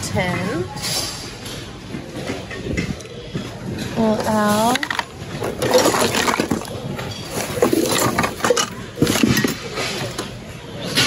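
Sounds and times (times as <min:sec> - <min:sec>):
rustling of goods in a bin: 0:03.3 - 0:11.0
hard plastic clattering: 0:04.0 - 0:10.3.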